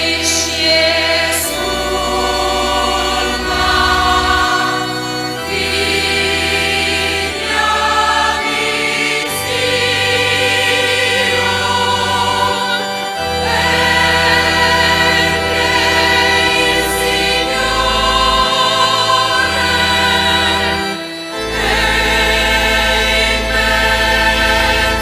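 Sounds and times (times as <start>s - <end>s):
choir singing a hymn: 0.0s - 25.0s
instrumental accompaniment: 0.0s - 25.0s
low bass notes: 0.0s - 25.0s.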